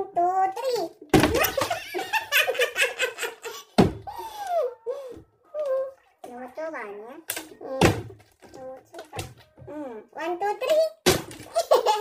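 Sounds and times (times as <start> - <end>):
plastic bottle thunking on table: 1.1 - 1.7, 3.8 - 4.1, 11.0 - 11.5
laughter: 1.3 - 3.8, 11.5 - 12.0.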